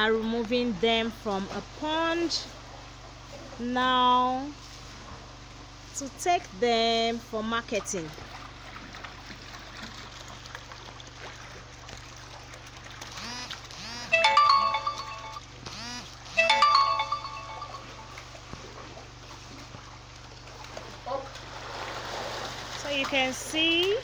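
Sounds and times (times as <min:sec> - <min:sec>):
low steady hum: 0:00.0 - 0:24.0
electronic ringtone melody: 0:14.1 - 0:15.5, 0:16.3 - 0:18.4.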